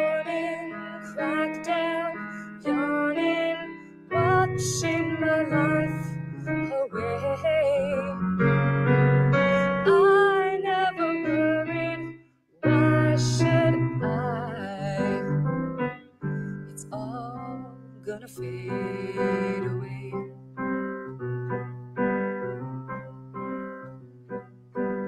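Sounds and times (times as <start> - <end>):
digital piano chords and melody: 0.0 - 25.0.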